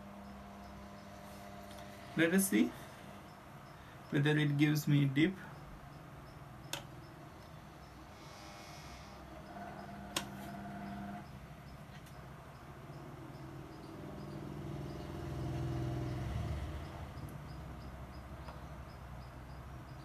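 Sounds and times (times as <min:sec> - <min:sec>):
faint background hum: 0:00.0 - 0:20.0.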